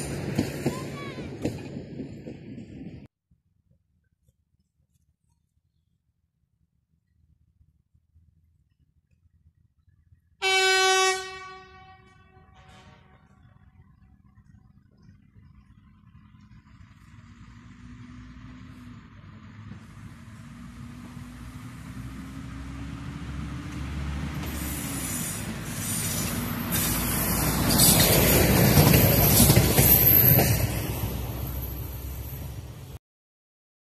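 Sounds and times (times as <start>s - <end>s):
diesel railcar passing: 0.0s - 3.1s, 8.1s - 33.0s
train horn blast: 10.4s - 13.4s.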